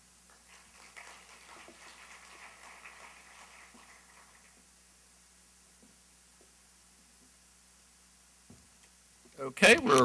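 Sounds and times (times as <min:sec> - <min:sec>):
low room hum: 0:00.0 - 0:10.0
audience applause: 0:00.3 - 0:04.6.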